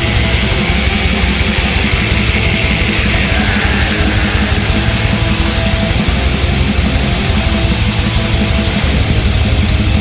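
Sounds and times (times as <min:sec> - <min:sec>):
distorted electric guitars: 0:00.0 - 0:10.0
fast dense drumming: 0:00.0 - 0:10.0.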